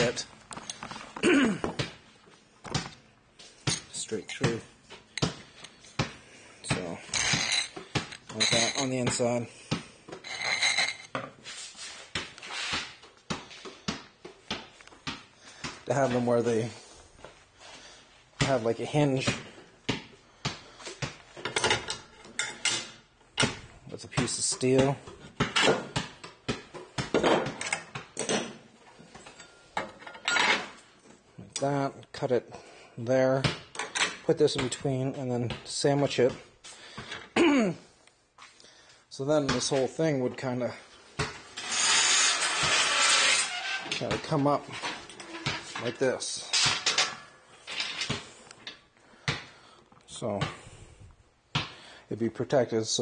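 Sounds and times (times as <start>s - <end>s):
metal ramp rasping: 41.6s - 44.0s.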